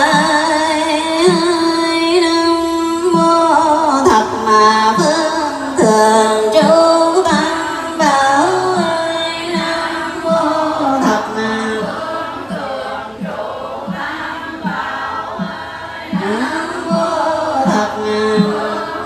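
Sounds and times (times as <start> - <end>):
women chanting in unison: 0.0 - 19.0.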